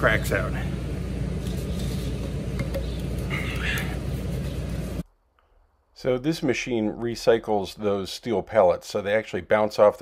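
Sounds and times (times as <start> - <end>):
noisy hiss: 0.0 - 10.0.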